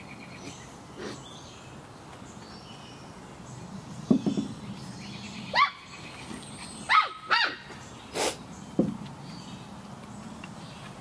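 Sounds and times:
puppy yipping: 6.9 - 7.7.

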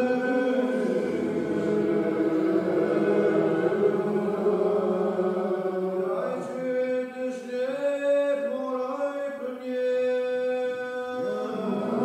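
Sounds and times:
congregation singing a psalm: 0.0 - 12.0.

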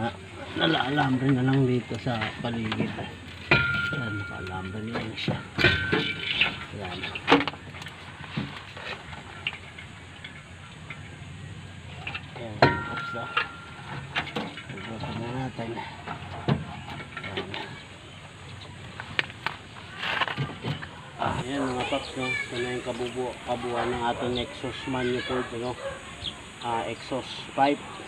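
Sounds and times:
indistinct voices: 0.0 - 28.0
metal knocks and clinks: 2.1 - 11.2, 11.9 - 17.9
ringing metal clang: 2.4 - 7.6, 12.0 - 17.8.

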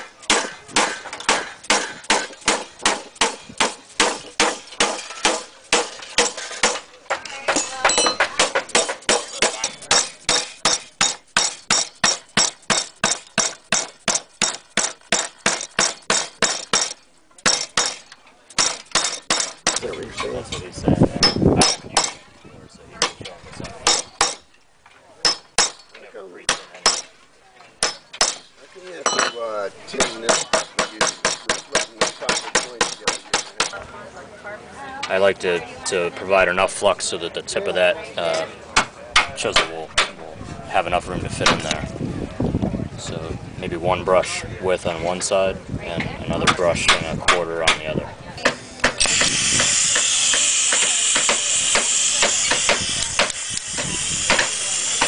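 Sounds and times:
claw hammer striking copper: 0.0 - 19.9, 21.2 - 22.2, 23.0 - 24.6, 25.2 - 27.2, 27.8 - 33.8, 38.8 - 40.2, 46.5 - 55.0
mallet blows on copper sheet: 48.4 - 55.0.

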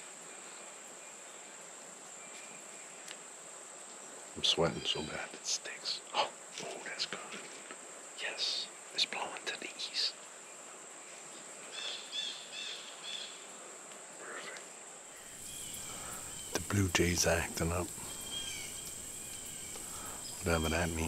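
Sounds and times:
blue jays calling: 4.4 - 7.3, 15.2 - 21.0
high-pitched insect drone: 15.2 - 21.0.

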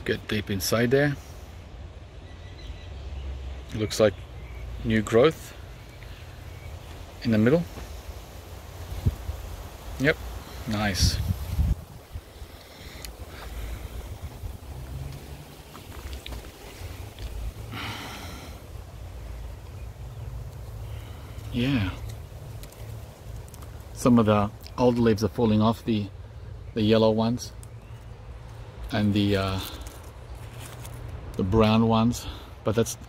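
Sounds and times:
wind buffeting microphone: 8.8 - 17.6.

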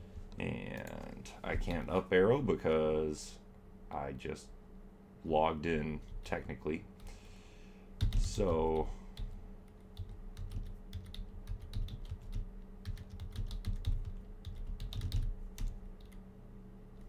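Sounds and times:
faint steady hum: 0.0 - 17.0
computer keyboard typing: 8.0 - 16.2.

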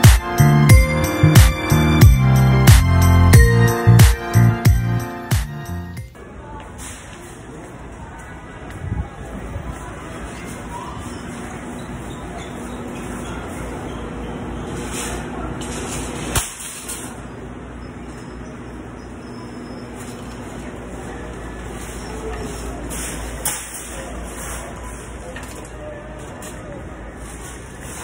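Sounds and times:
indistinct voices in a store: 6.0 - 28.0.

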